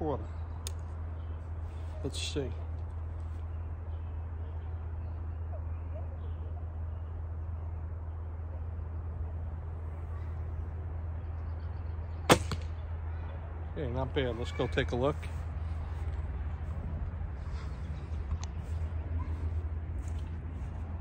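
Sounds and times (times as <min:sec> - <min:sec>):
arrow hitting target: 0:12.3 - 0:12.8.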